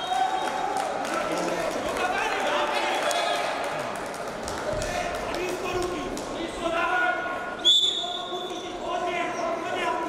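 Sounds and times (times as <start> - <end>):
referee's whistle: 7.6 - 8.3.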